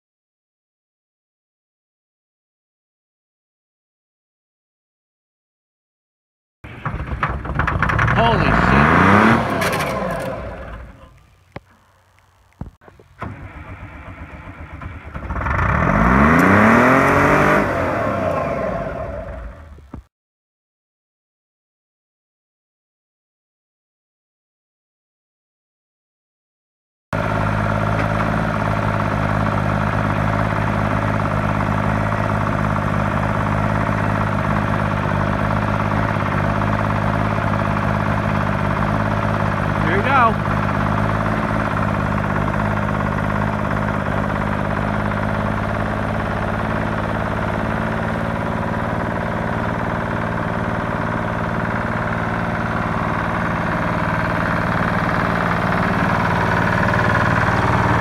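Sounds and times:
diesel engine revving: 6.7 - 20.0, 27.2 - 58.0.

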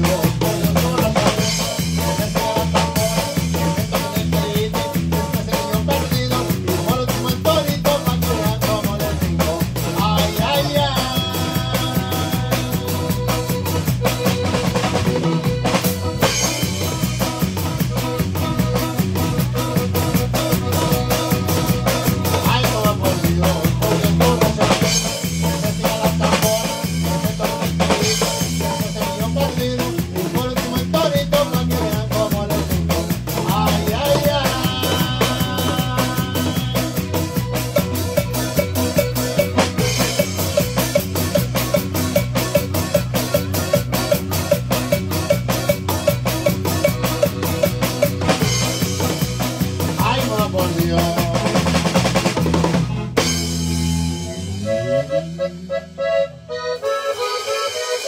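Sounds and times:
bass: 0.0 - 58.0
drum kit fast beat: 0.0 - 58.0
live band playing: 0.0 - 58.0.

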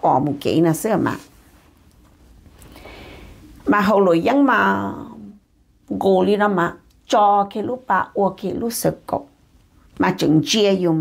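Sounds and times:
woman speaking: 0.0 - 1.4, 3.6 - 11.0
faint room noise: 0.0 - 11.0.

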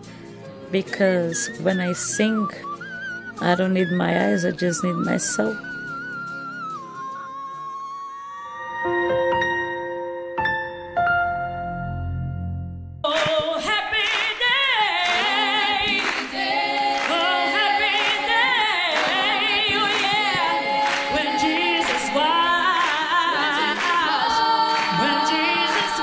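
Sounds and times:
woman singing unaccompanied: 0.8 - 2.6, 3.4 - 5.6, 13.1 - 16.3, 16.9 - 26.0.

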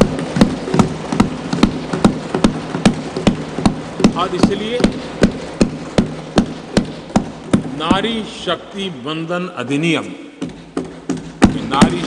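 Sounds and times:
thumping on wooden desks: 0.0 - 8.5, 10.4 - 12.0.

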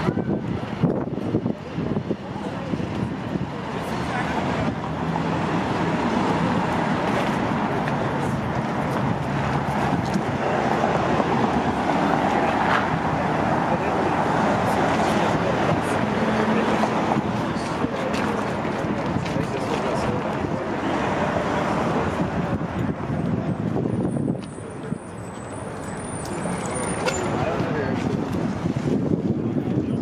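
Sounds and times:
people talking: 0.0 - 5.0, 7.1 - 28.6
street traffic: 0.0 - 30.0.

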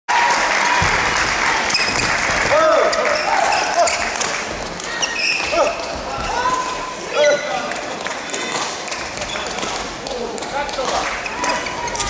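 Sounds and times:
shoes squeaking on court: 2.9 - 9.8, 10.9 - 12.0.

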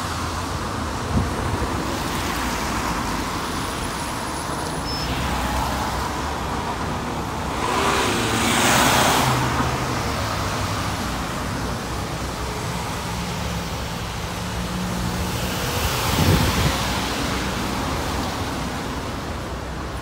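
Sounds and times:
steady traffic noise: 0.0 - 20.0
car passing on wet road: 1.9 - 19.4.

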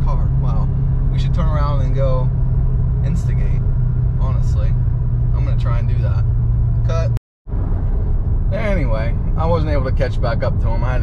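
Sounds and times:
car engine and tyres hum: 0.0 - 11.0.

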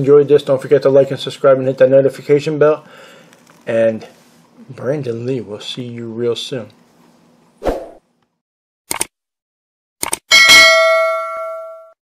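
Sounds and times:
bright bell ding: 10.3 - 12.0.

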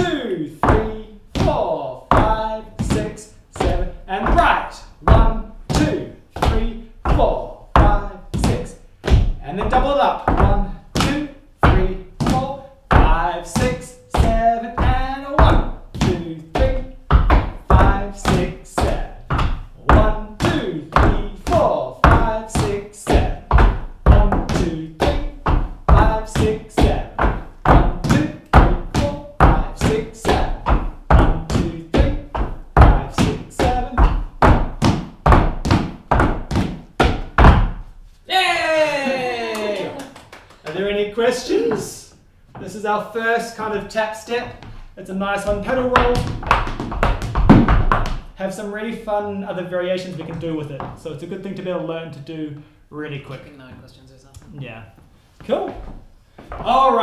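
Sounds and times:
shoes tapping on wooden floor: 0.0 - 38.2, 43.6 - 48.4, 50.1 - 51.2, 53.6 - 57.0.

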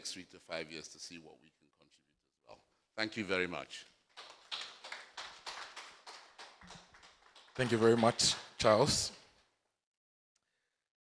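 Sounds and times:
light applause: 4.1 - 9.2.

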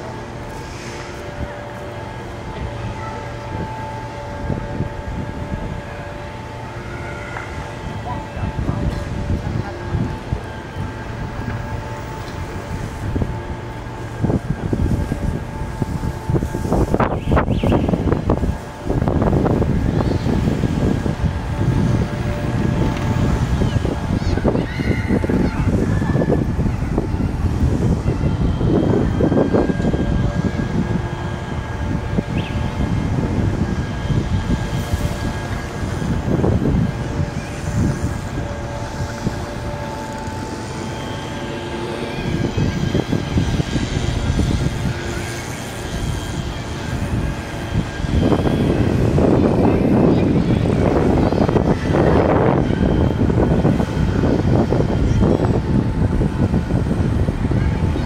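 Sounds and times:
traffic rumble: 0.0 - 58.0
vehicles passing: 0.0 - 58.0.

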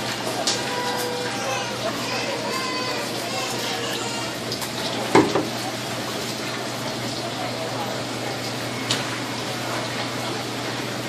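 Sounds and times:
running water: 0.0 - 11.0
loud knock: 5.1 - 5.5.

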